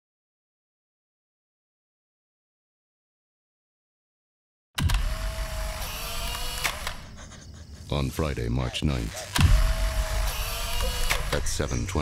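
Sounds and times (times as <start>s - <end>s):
sharp clicks: 4.8s - 7.1s, 9.2s - 11.5s
low rumbling drone: 7.0s - 11.9s.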